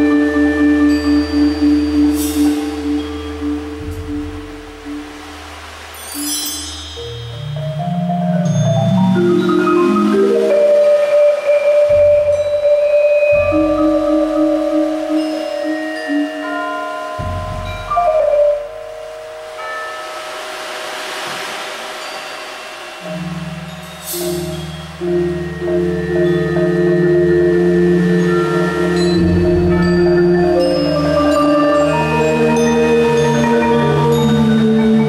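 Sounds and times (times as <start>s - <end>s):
marimba ensemble held notes: 0.0s - 35.0s
soft swell of noise: 0.0s - 35.0s
bright shimmering stroke: 6.0s - 7.8s.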